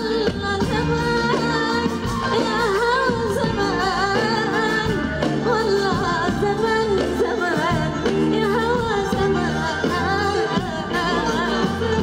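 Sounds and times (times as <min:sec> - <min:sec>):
band accompaniment: 0:00.0 - 0:12.0
woman singing into a microphone: 0:00.0 - 0:12.0.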